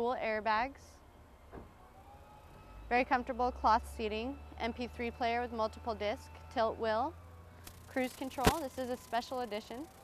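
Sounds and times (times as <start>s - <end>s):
woman speaking: 0.0s - 0.9s, 2.9s - 7.1s, 7.9s - 9.9s.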